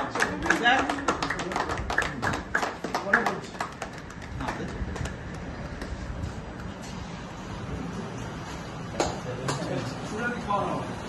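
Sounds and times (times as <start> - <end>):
small group clapping: 0.0 - 5.9, 9.0 - 9.7.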